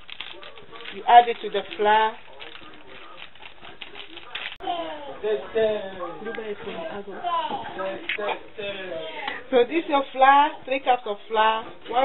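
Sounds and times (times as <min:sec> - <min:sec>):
foil sachet crinkling: 0:00.0 - 0:04.6.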